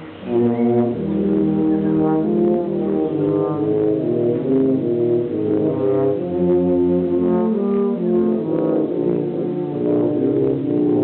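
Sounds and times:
low brass quartet playing: 0:00.0 - 0:11.0.

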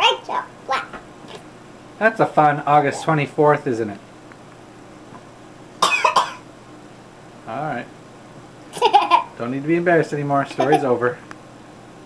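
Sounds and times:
person coughing: 0:05.8 - 0:06.4.

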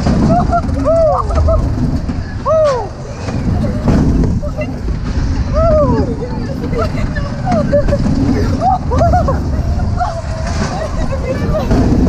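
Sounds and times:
coaster wheels squealing: 0:00.0 - 0:12.0
roller coaster rumbling on track: 0:00.0 - 0:12.0
wind on microphone: 0:00.0 - 0:12.0.

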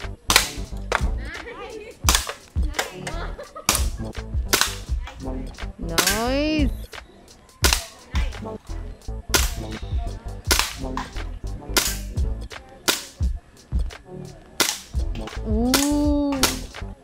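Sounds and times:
air pistol shots: 0:00.3 - 0:00.7, 0:02.1 - 0:02.4, 0:03.7 - 0:04.9, 0:07.6 - 0:07.9, 0:09.3 - 0:09.7, 0:10.5 - 0:11.1, 0:11.8 - 0:12.2, 0:12.9 - 0:13.2, 0:14.6 - 0:16.8.

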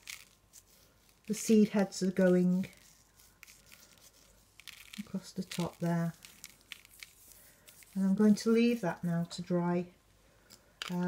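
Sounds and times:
salt grains ticking on paper: 0:00.0 - 0:09.0.

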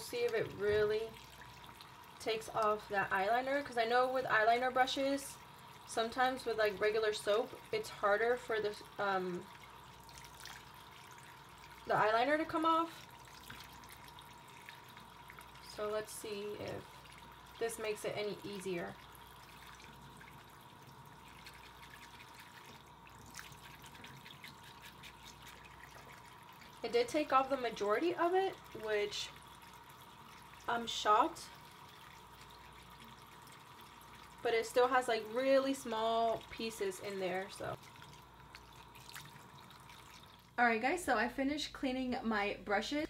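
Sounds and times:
tap water running into sink: 0:00.0 - 0:40.6
faucet trickling onto hand: 0:05.4 - 0:40.6
brush scrubbing in soap: 0:21.2 - 0:29.3.

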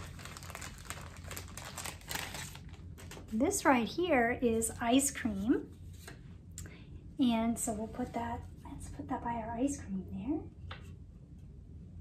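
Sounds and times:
paper rustling and crinkling: 0:00.0 - 0:03.4.

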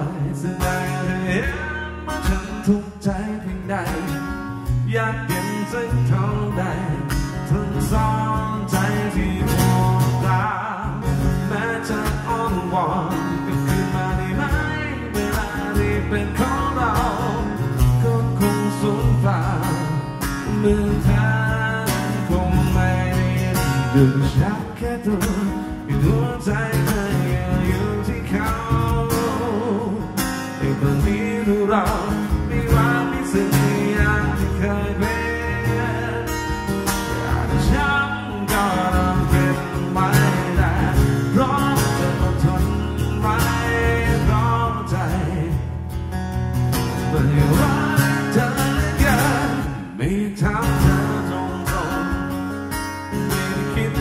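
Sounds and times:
man singing: 0:00.0 - 0:45.8, 0:46.8 - 0:54.0
acoustic guitar strumming: 0:00.0 - 0:54.0.

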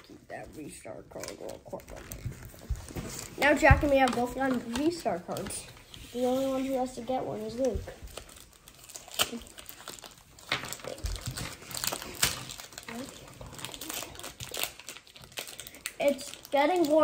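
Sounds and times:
plastic foil wrapper crinkling: 0:00.0 - 0:17.0.

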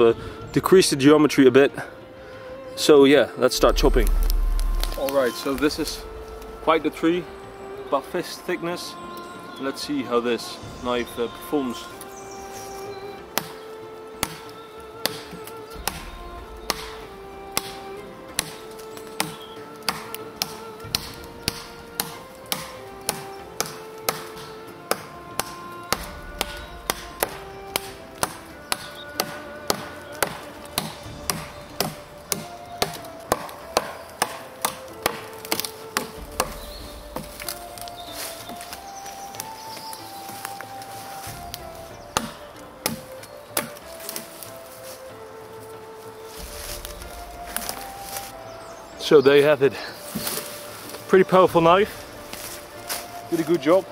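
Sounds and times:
background music: 0:00.0 - 0:53.9
knife chopping wood: 0:03.6 - 0:06.1, 0:13.3 - 0:44.9, 0:46.4 - 0:48.3, 0:50.0 - 0:51.0.

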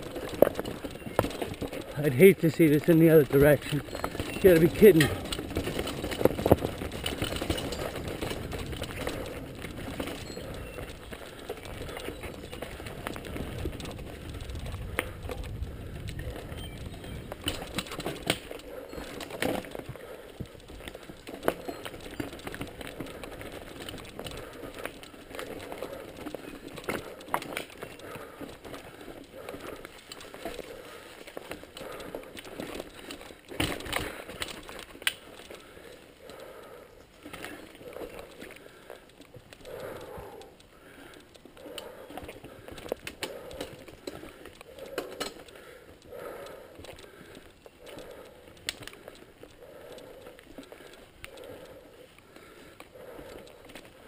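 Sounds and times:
bike clattering and knocking: 0:00.0 - 0:20.0, 0:20.6 - 0:35.7, 0:41.8 - 0:49.1
bike tyres rolling over stones: 0:00.0 - 0:54.0.

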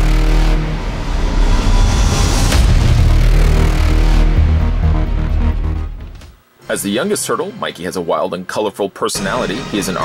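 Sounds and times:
deep bass rumble: 0:00.0 - 0:06.2
rising whoosh: 0:00.6 - 0:06.0.

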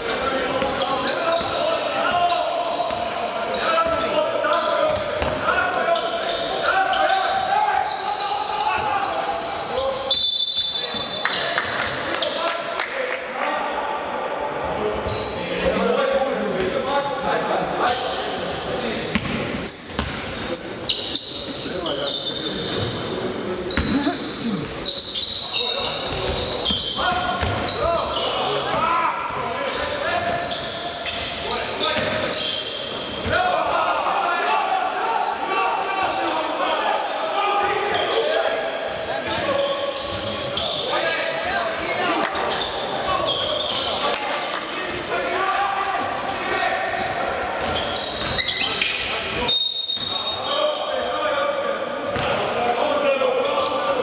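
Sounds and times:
sneakers squeaking: 0:00.0 - 0:12.4, 0:14.0 - 0:44.2, 0:44.8 - 0:51.1, 0:52.0 - 0:52.6.

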